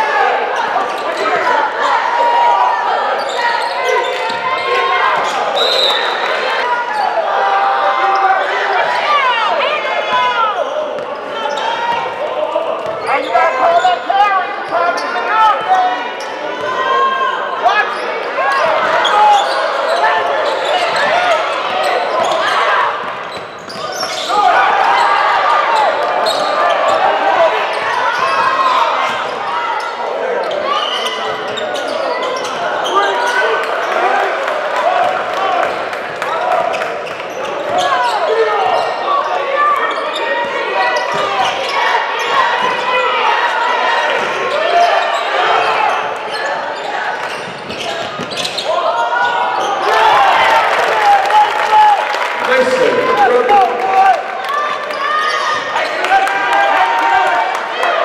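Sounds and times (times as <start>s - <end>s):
echoing crowd voices: 0.0s - 58.0s.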